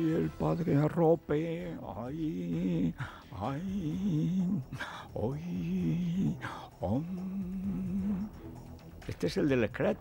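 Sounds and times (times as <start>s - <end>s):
man humming: 1.9s - 8.5s.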